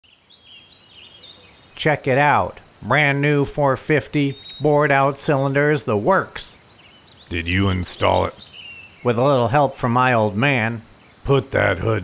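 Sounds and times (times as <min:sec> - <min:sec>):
faint bird chirps: 0:00.0 - 0:12.0
outdoor ambience: 0:00.0 - 0:12.0
man's voice: 0:01.8 - 0:06.6, 0:07.3 - 0:08.4, 0:09.0 - 0:12.0.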